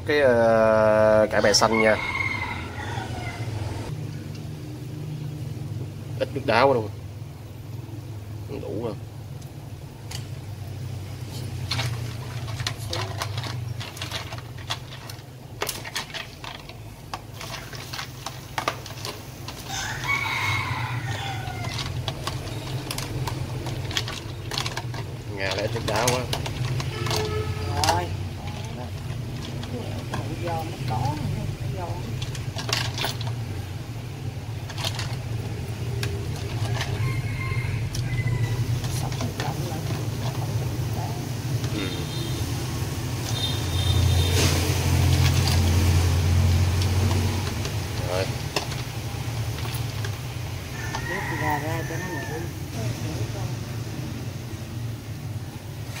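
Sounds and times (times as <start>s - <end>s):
rooster crowing: 1.4s - 3.9s, 19.6s - 23.1s, 36.0s - 39.1s, 50.6s - 52.8s
hands stirring greens in water: 11.2s - 33.6s, 34.3s - 42.4s, 43.1s - 52.6s
ice cubes knocking against bowl: 11.6s - 20.3s, 20.9s - 30.3s, 34.6s - 37.0s.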